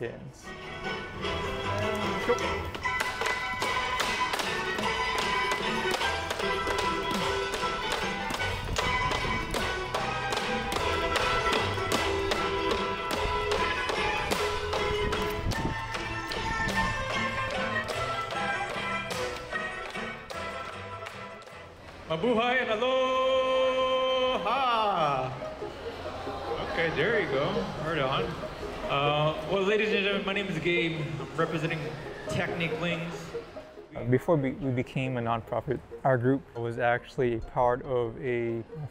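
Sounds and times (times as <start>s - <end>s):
recorded music: 0.0s - 38.9s
bamboo poles clapping together: 2.7s - 22.0s.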